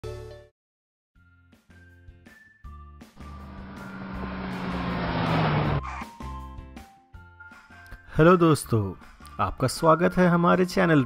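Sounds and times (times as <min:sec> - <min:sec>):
car engine rushing: 0:03.2 - 0:06.0.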